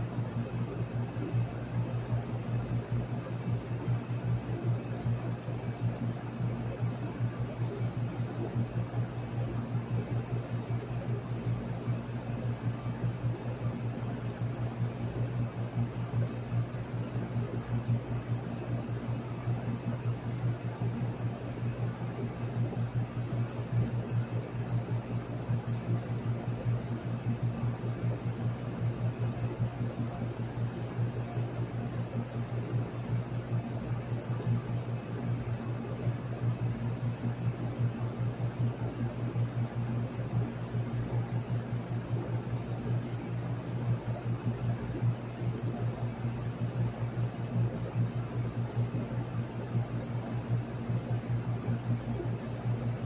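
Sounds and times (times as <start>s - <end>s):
air conditioner low hum: 0.0s - 53.0s
condenser fan air rush: 0.0s - 53.0s.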